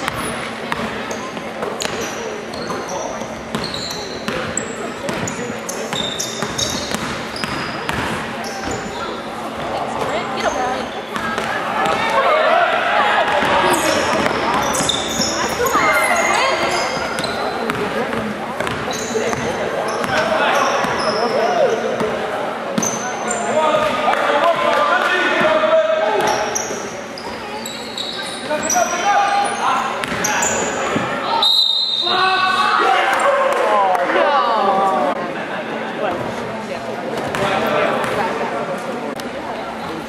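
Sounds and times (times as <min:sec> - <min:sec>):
sneakers squeaking: 0:00.0 - 0:12.4, 0:13.2 - 0:24.0, 0:25.4 - 0:33.4
people calling out and chattering: 0:00.0 - 0:40.0
basketball bouncing: 0:04.3 - 0:08.8, 0:13.3 - 0:15.7, 0:16.6 - 0:21.0, 0:30.0 - 0:30.3.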